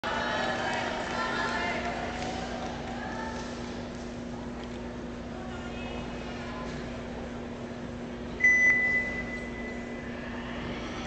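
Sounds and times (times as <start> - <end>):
low steady hum: 0.0 - 11.0
electronic beep: 8.4 - 9.9.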